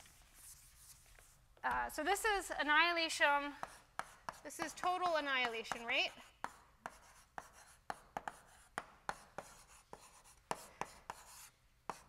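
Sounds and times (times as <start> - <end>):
chalk tapping and scratching: 0.0 - 1.4, 3.5 - 12.0.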